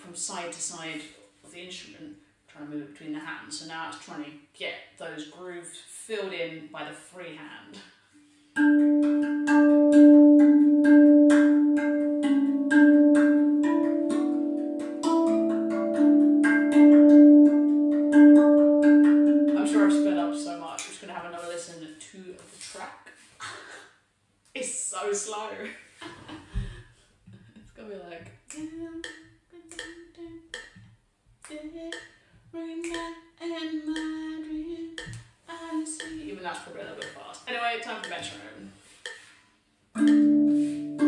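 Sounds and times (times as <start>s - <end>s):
steel tongue drum melody: 8.6s - 20.7s, 40.0s - 41.0s.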